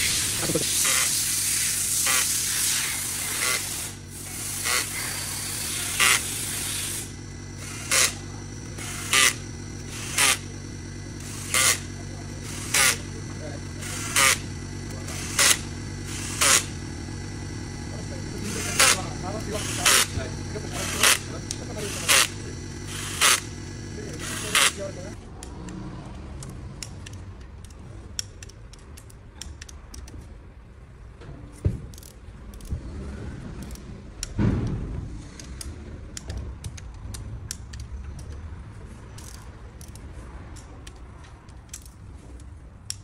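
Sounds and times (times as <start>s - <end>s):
steady hiss: 0.0s - 25.1s
power driver running bolts: 0.0s - 25.8s, 39.1s - 43.0s.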